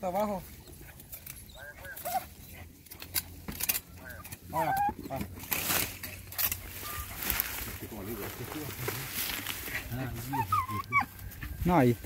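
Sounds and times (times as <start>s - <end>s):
pine needles rustling: 0.0s - 12.0s
metal tool digging stony soil: 2.9s - 7.7s.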